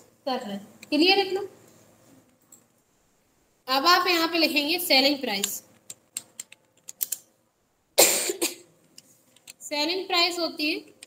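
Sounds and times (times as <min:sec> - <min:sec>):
keyboard keystrokes: 0:05.4 - 0:07.2
person coughing: 0:08.0 - 0:08.7.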